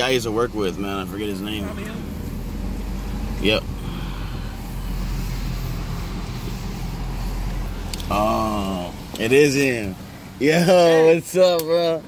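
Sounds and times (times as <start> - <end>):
car engine running low rumble: 0.0 - 12.0.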